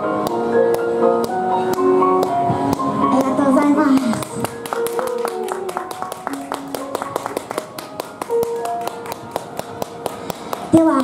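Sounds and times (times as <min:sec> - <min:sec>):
small audience clapping: 0:03.9 - 0:11.0.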